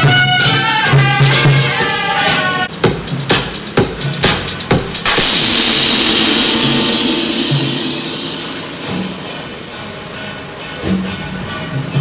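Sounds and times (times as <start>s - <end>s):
soft low drum beats: 2.7s - 10.2s
cymbal crash: 3.6s - 10.8s.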